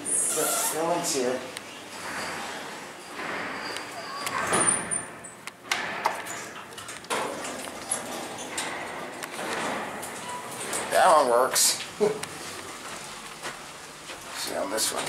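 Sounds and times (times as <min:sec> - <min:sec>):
elevator doors sliding open: 0:00.0 - 0:15.0
footsteps: 0:07.3 - 0:15.0.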